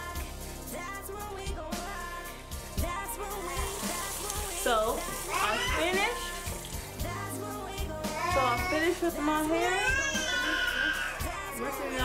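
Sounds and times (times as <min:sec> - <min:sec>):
rock song with steady beat: 0:00.0 - 0:05.3, 0:06.3 - 0:09.4
kitchen faucet running: 0:02.8 - 0:12.0.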